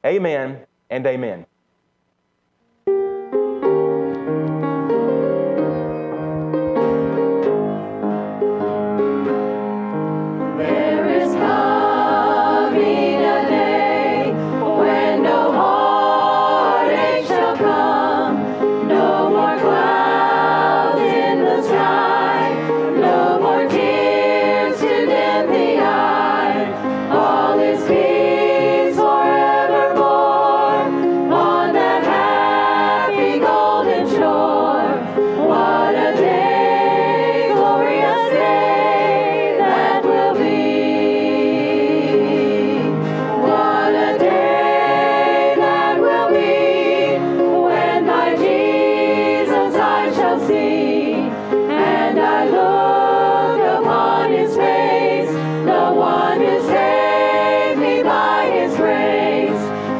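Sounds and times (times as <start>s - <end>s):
choir singing gospel: 7.2s - 59.9s.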